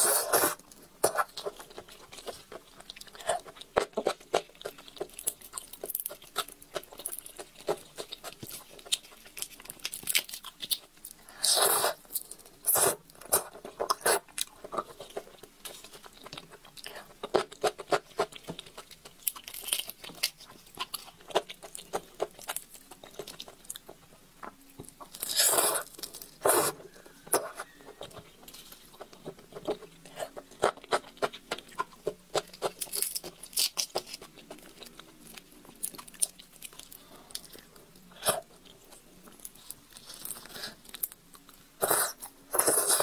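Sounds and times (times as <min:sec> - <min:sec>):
shrimp shells cracking: 0:18.3 - 0:23.6, 0:30.6 - 0:37.7.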